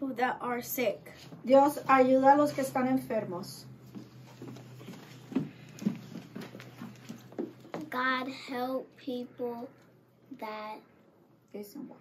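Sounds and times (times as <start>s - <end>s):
children shuffling on floor: 3.8s - 7.9s.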